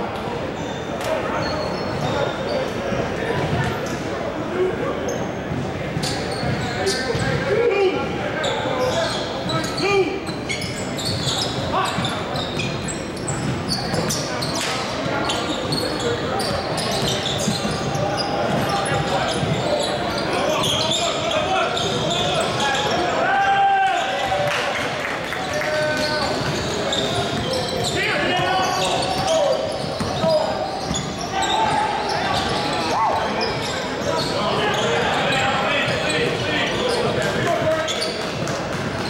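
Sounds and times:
sneakers squeaking: 0.1 - 23.3, 25.2 - 39.0
players calling out: 25.2 - 38.1.

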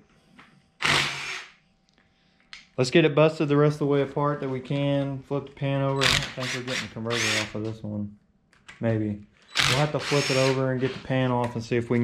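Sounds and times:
power tool whirring: 0.8 - 1.6, 6.0 - 7.6, 9.4 - 11.1.

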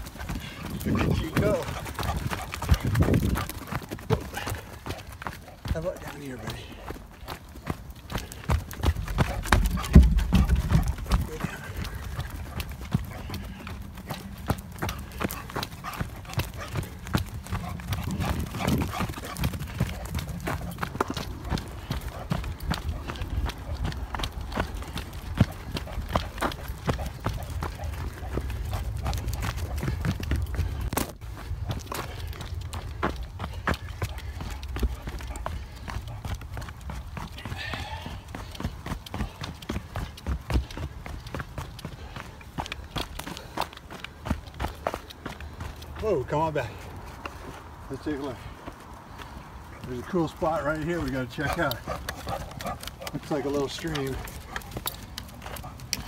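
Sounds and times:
wind rumble: 0.0 - 4.7, 8.7 - 37.0
running footfalls on dirt trail: 0.0 - 56.0.

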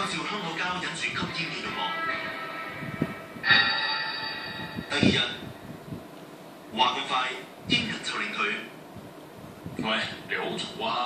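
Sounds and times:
background music: 1.4 - 5.2
loud musical sting: 1.6 - 5.5
man talking: 4.9 - 5.5.

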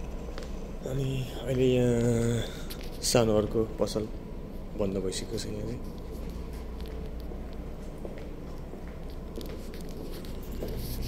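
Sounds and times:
low hum inside ferry: 0.0 - 11.0.

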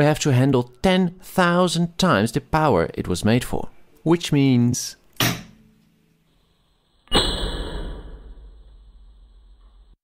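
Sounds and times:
faint steady hum: 7.9 - 10.0.

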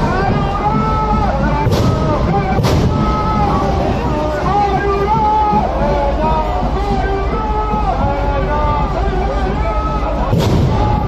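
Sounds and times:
crowd babble: 0.0 - 11.0
sharp bang with low thud: 1.6 - 3.2, 10.3 - 11.0.

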